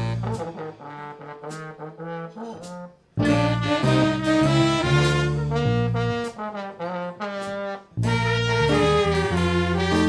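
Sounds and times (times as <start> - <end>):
live jazz ensemble with brass: 0.0 - 10.0.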